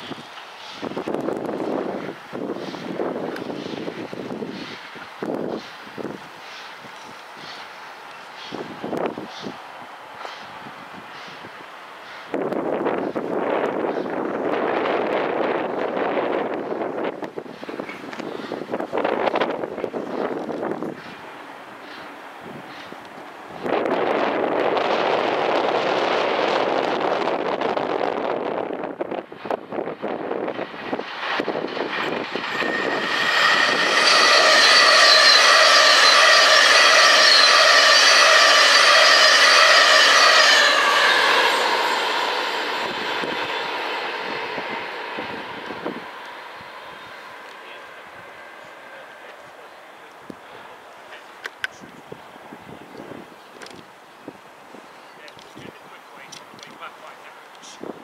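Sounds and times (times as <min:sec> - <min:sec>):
steam locomotive exhaust rushing: 0:00.0 - 0:53.4.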